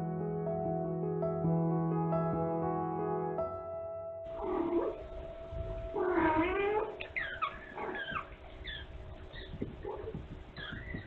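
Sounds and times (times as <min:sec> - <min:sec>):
kittens mewing: 0:06.0 - 0:11.0.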